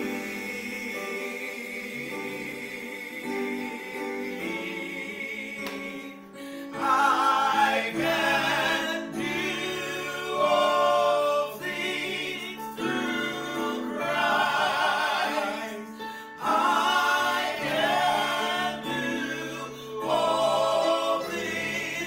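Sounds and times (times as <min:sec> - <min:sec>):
man and woman singing: 0:00.0 - 0:22.0.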